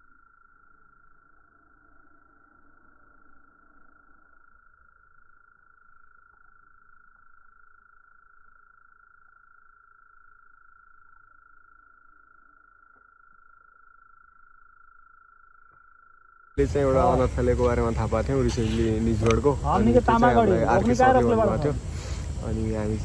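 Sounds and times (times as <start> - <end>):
low background rumble: 16.6 - 23.0.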